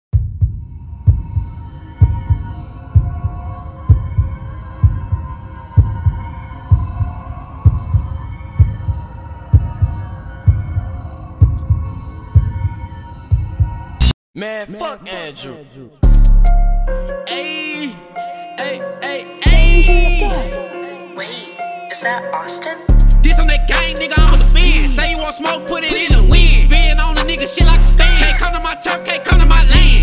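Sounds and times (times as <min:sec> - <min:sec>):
deep heartbeat-like double thump: 0:00.2 - 0:12.7
sustained high tones: 0:18.6 - 0:23.7.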